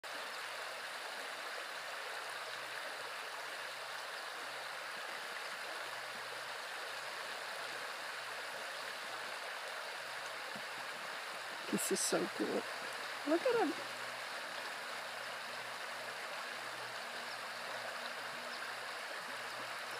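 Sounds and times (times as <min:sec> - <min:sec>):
river water rushing over gravel: 0:00.1 - 0:19.9.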